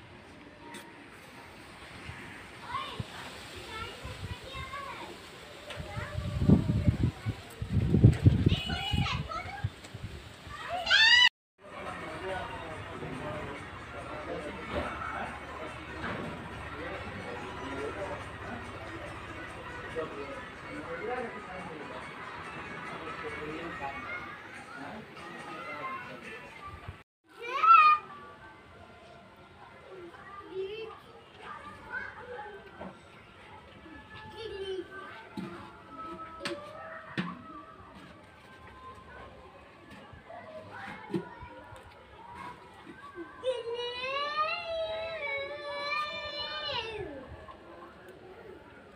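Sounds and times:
children calling outdoors: 2.5 - 48.9.

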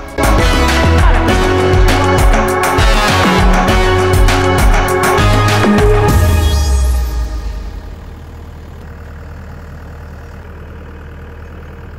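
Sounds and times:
background music: 0.0 - 8.3
diesel engine idling: 0.0 - 11.9.

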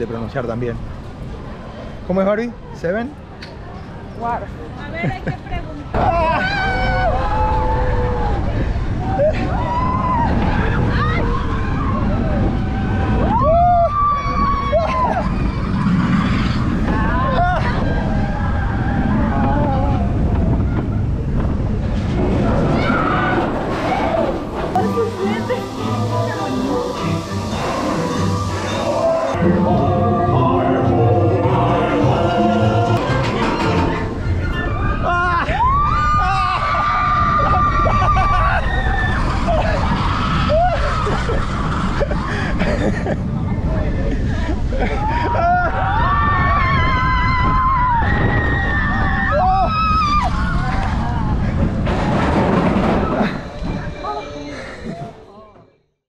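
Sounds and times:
roller coaster rumbling on track: 0.0 - 55.8
riders whooping: 6.0 - 21.3, 22.3 - 42.8, 44.4 - 55.1
wind buffeting microphone: 7.0 - 27.5, 31.6 - 54.0.

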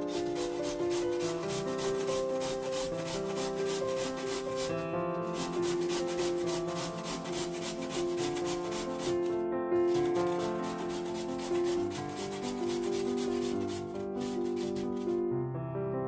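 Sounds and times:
potato grated on metal grater: 0.0 - 15.2
soft piano music: 0.0 - 16.0.

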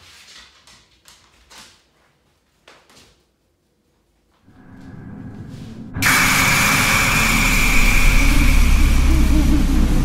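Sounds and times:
deep rumble: 4.5 - 10.0
noisy wash: 4.5 - 10.0.

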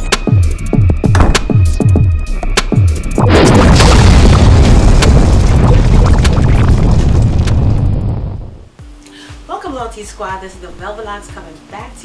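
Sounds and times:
electronic intro music: 0.0 - 8.7
cinematic boom with rushing rumble: 3.2 - 8.7.

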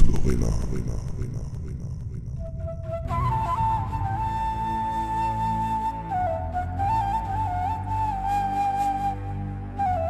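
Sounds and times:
flute-like wind melody: 2.4 - 10.0.

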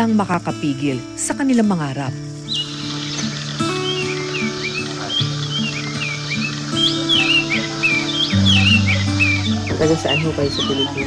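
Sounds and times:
birds chirping: 0.0 - 11.0
music of held low notes: 0.0 - 11.0.

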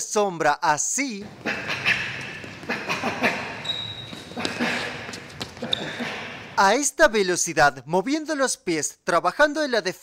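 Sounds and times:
sneaker squeaks: 1.2 - 6.6
quick footfalls on wooden floor: 3.8 - 6.0.

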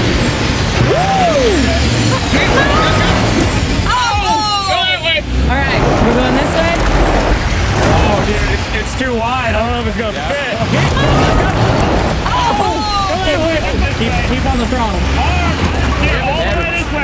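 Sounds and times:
diesel engine working hard: 0.0 - 17.0
people whooping and yelling: 0.7 - 5.3, 10.7 - 13.8.

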